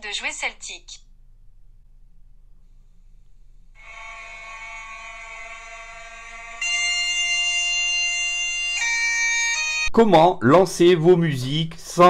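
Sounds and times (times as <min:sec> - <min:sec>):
bagpipe music through phone speaker: 0:03.8 - 0:09.9.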